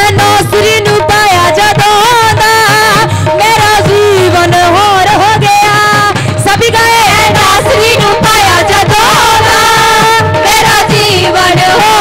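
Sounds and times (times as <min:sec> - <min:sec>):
dhol and tabla drumming: 0:00.0 - 0:12.0
young female voices singing: 0:06.5 - 0:12.0.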